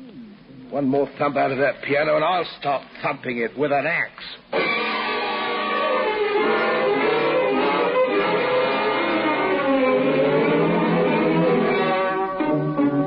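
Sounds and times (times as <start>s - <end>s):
orchestral string music: 4.6s - 13.0s.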